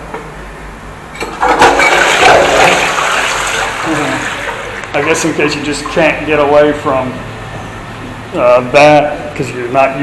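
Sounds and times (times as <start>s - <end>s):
toilet cistern flushing: 1.1s - 6.6s.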